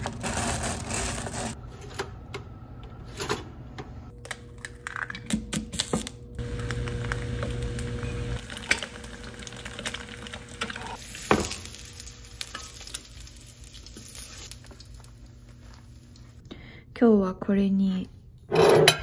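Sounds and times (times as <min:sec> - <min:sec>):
food sizzling in a pan: 0:06.4 - 0:16.4.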